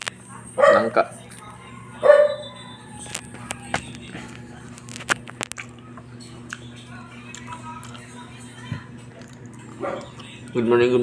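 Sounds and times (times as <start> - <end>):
electric fan hum: 0.0 - 11.0.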